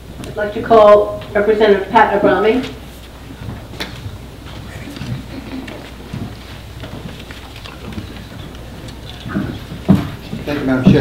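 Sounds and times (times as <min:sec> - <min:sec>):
shuffling and small knocks: 0:02.6 - 0:11.0.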